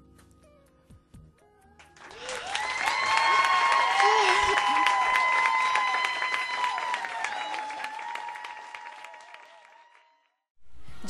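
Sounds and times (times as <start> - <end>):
audience applause: 2.0 - 10.4.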